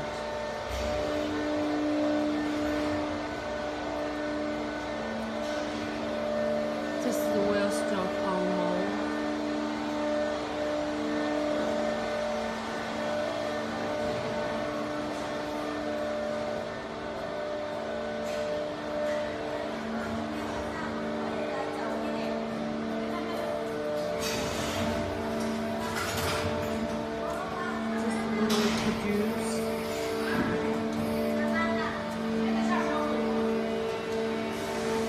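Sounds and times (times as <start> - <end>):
machines humming: 0.0 - 35.0
voices: 27.4 - 29.8.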